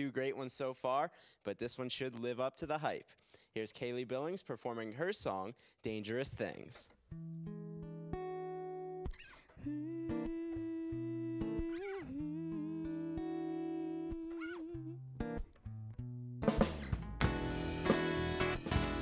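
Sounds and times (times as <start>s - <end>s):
guitar notes and chords: 7.1s - 19.0s
bass guitar: 9.1s - 19.0s
drums: 16.4s - 19.0s.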